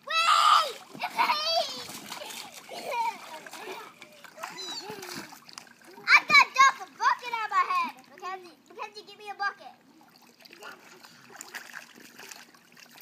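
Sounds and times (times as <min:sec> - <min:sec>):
child's high cry: 0:00.0 - 0:01.8, 0:03.8 - 0:05.3
children's voices: 0:00.0 - 0:09.8
water splashing in a pool: 0:00.0 - 0:13.0.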